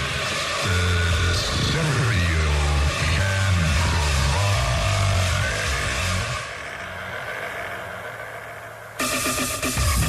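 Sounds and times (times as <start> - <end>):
hardstyle dance music: 0.0 - 10.0.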